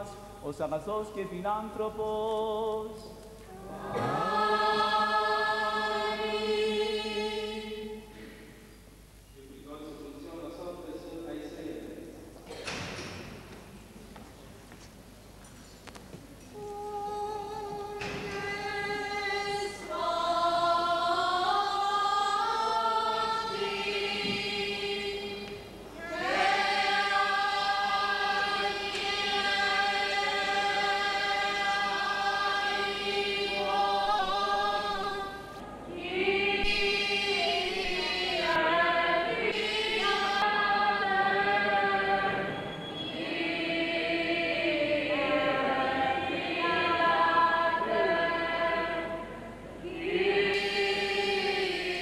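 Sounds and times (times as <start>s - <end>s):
unaccompanied choir chanting: 0.0s - 8.5s, 16.6s - 52.0s.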